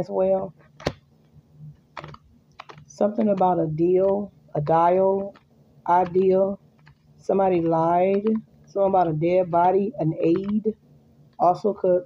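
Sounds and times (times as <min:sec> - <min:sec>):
cards being shuffled: 0:01.9 - 0:08.4.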